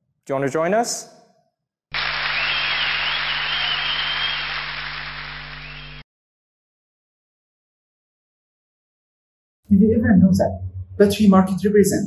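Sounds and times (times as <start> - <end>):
high wavering whistle: 2.0 - 4.7, 5.5 - 6.0
audience applause: 2.0 - 6.0.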